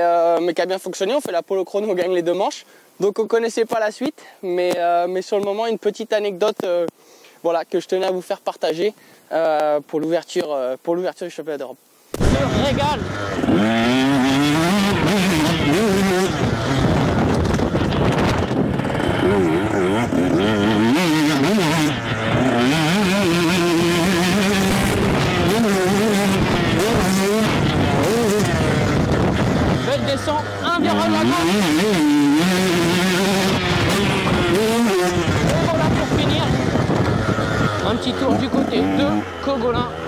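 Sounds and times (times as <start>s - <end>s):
motocross bike engine revving: 12.2s - 40.0s.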